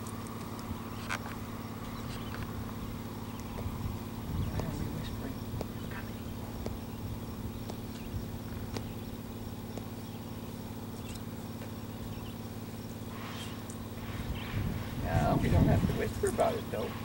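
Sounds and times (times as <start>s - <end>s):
low engine hum: 0.0s - 17.0s
voices: 0.4s - 17.0s.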